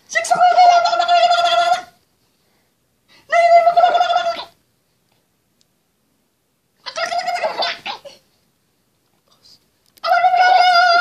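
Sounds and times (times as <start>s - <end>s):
baby laughing: 6.9s - 8.2s.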